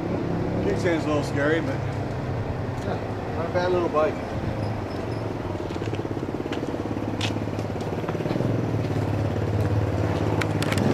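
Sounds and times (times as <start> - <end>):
motorcycle engine idling: 0.3 - 10.9.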